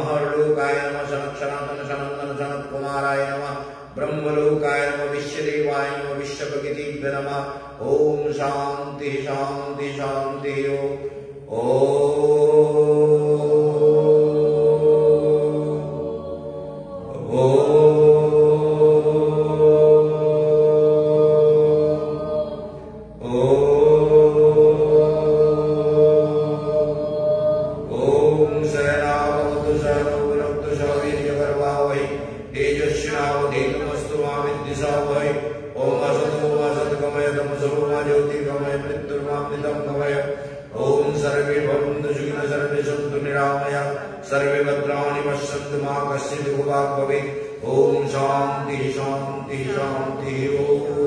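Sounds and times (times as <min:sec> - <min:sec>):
man chanting: 0:00.0 - 0:51.0.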